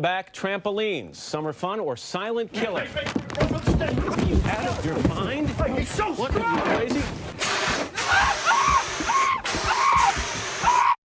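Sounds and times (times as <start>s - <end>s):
fire extinguisher hissing: 7.3s - 11.0s
short cries: 7.9s - 11.0s.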